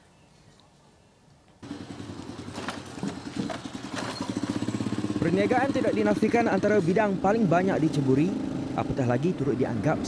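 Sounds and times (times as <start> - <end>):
small motorcycle engine running: 1.6 - 9.4.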